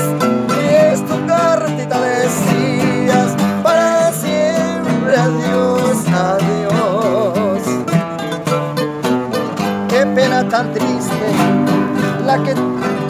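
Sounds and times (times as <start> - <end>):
picked acoustic guitar melody: 0.0 - 13.0
strummed guitar chords: 0.0 - 13.0.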